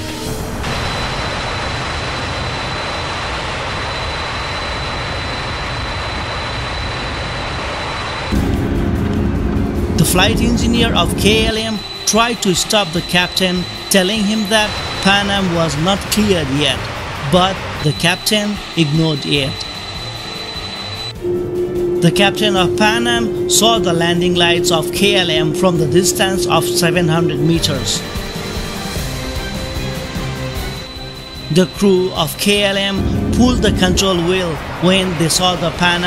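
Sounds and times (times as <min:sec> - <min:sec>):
jet engines roaring: 0:00.0 - 0:36.0
low sustained music chord: 0:08.3 - 0:16.5, 0:19.6 - 0:32.1, 0:33.0 - 0:35.0
steady held note: 0:08.3 - 0:36.0.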